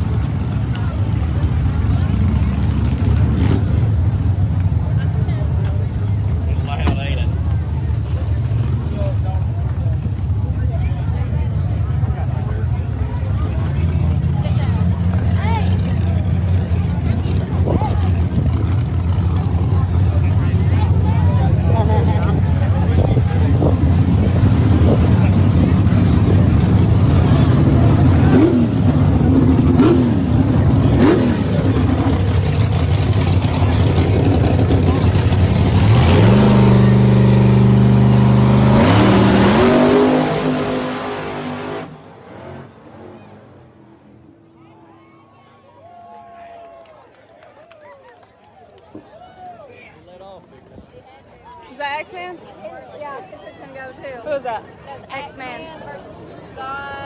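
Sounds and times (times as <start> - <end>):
drag race car engines rumbling: 0.0 - 45.0
crowd voices: 0.0 - 57.0.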